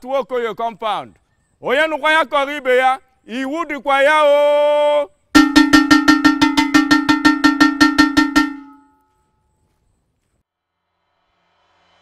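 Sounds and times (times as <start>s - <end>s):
metal gong beaten rapidly: 5.4s - 8.8s.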